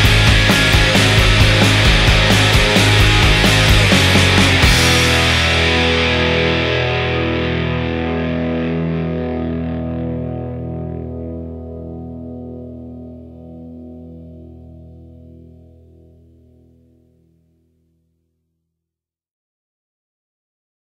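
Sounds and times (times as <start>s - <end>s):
distorted electric guitar chord ringing: 0.0s - 16.6s.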